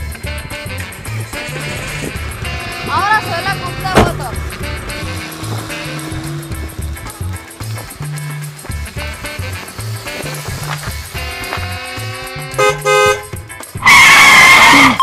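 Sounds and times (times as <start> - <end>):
background music with beat: 0.0 - 15.0.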